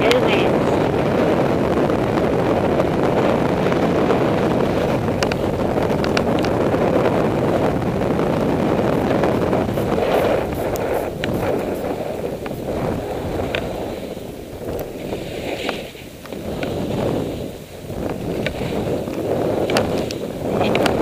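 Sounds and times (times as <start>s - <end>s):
wind rushing over microphone: 0.0s - 21.0s.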